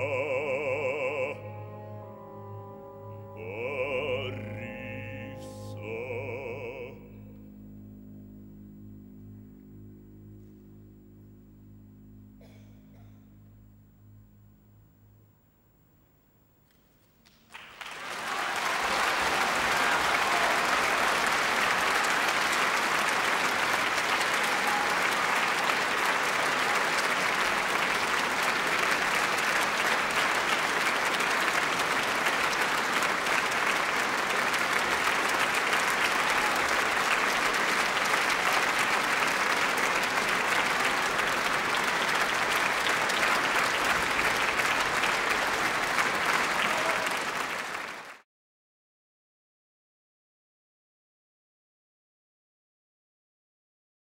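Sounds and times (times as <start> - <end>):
audience applauding: 17.2 - 48.2.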